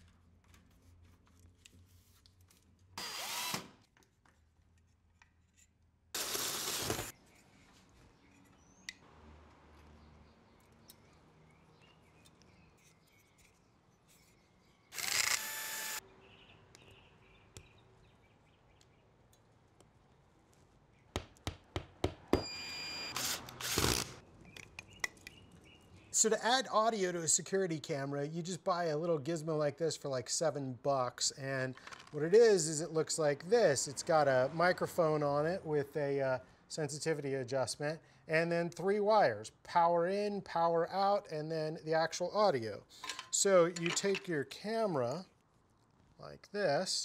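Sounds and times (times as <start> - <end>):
cordless drill driving screws: 3.0 - 3.8, 14.9 - 16.0, 22.6 - 24.2.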